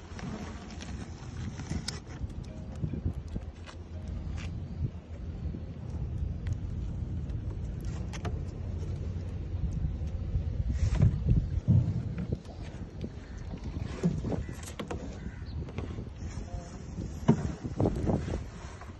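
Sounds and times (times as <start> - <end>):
steady low rumble: 0.0 - 18.9.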